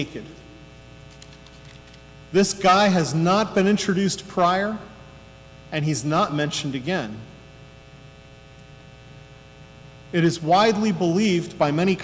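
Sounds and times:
man speaking: 0.0 - 0.4, 2.3 - 5.0, 5.7 - 7.3, 10.1 - 12.0
electrical mains hum: 0.0 - 12.0.

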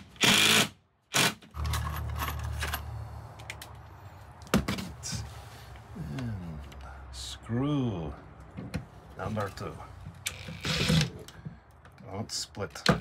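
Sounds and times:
impact driver driving screw: 0.0 - 1.7, 10.3 - 11.2.

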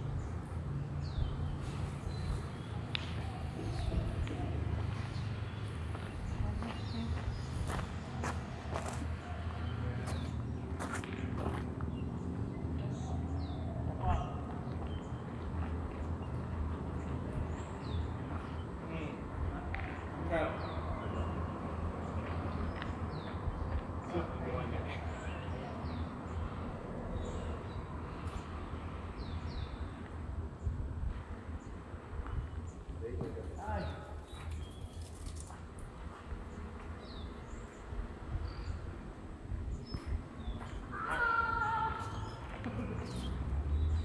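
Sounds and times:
footsteps on loose gravel: 4.9 - 12.0.

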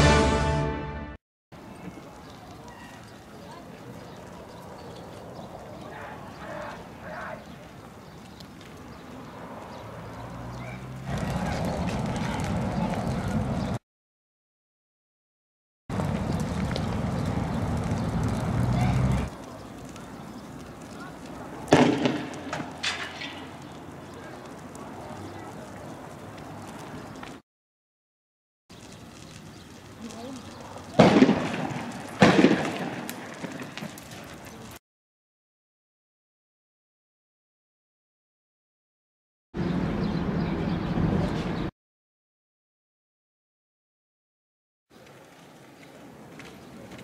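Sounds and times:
canister clattering on road: 21.7 - 23.7.

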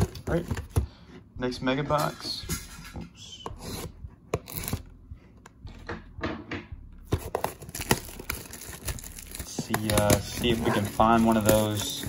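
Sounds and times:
shrink wrap crackling and ripping: 7.5 - 12.0.

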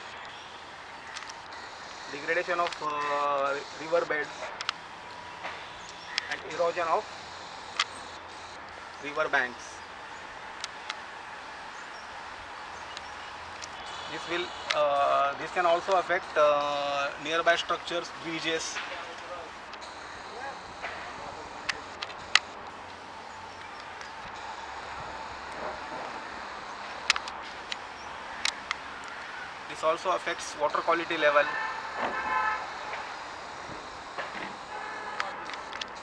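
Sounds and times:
steady outdoor hiss: 0.0 - 36.0
short sharp clicks: 26.8 - 29.2.

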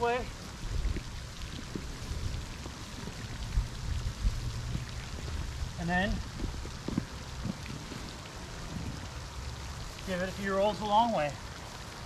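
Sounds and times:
wind rumble on microphone: 0.0 - 10.2
fountain splashing: 0.0 - 12.0.

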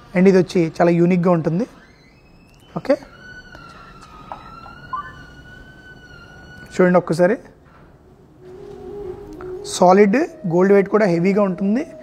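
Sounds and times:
high-pitched wailing tone: 2.2 - 7.1, 8.4 - 12.0.

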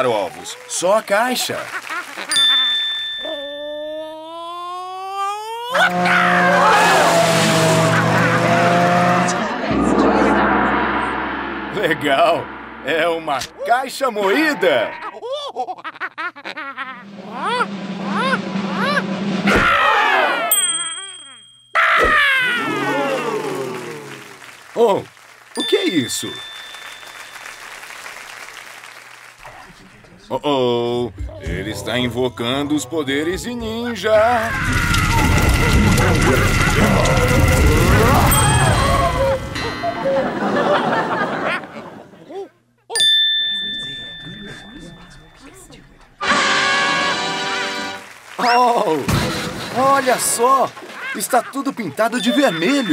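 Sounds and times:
falling glides with ringing tone: 9.2 - 13.7, 34.5 - 41.3
bright bell-like ding: 9.7 - 13.7, 20.5 - 21.8, 25.6 - 27.8, 38.2 - 41.0, 42.9 - 45.4
cartoon thump: 17.4 - 20.2, 49.1 - 49.8.

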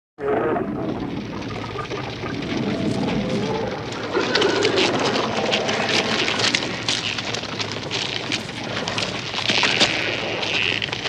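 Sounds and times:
low shifting tones: 0.2 - 7.6
crackling and hissing noise: 0.2 - 11.0.

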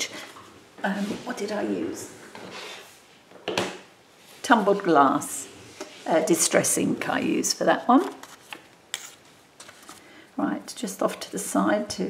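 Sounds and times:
paper rustling: 8.0 - 10.1.

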